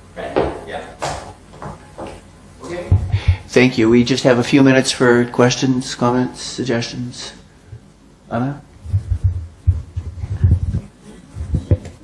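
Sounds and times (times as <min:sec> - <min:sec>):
microphone handling thumps: 0:02.8 - 0:03.5, 0:08.8 - 0:12.0.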